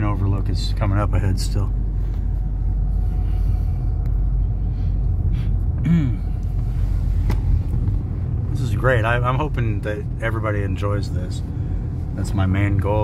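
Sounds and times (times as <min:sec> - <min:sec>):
car cabin road rumble: 0:00.0 - 0:13.0
man clearing throat: 0:05.8 - 0:06.4.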